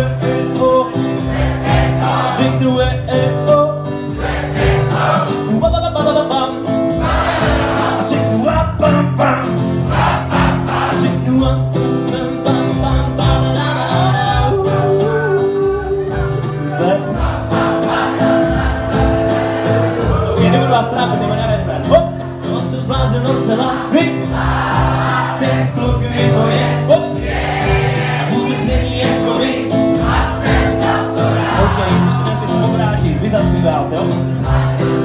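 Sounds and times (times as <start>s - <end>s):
man singing: 0.0s - 1.3s, 2.0s - 4.0s, 5.0s - 6.9s, 7.9s - 9.7s, 10.8s - 17.3s, 20.0s - 24.3s, 25.4s - 27.2s, 28.3s - 30.0s, 31.3s - 35.0s
choir singing: 0.9s - 3.0s, 3.9s - 5.6s, 6.8s - 8.4s, 9.8s - 11.3s, 16.3s - 21.4s, 23.4s - 32.6s, 34.2s - 35.0s.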